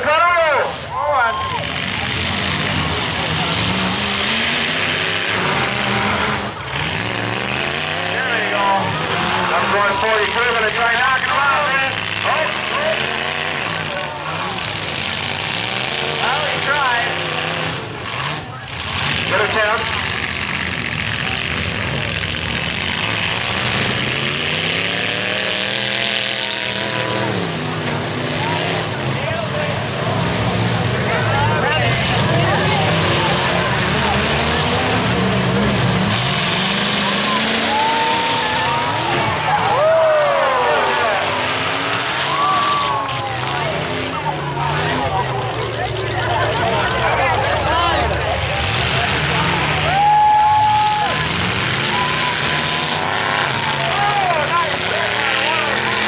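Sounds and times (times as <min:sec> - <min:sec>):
crowd noise: 0:00.0 - 0:56.0
truck engines revving: 0:00.0 - 0:56.0
trucks ramming each other: 0:00.0 - 0:56.0.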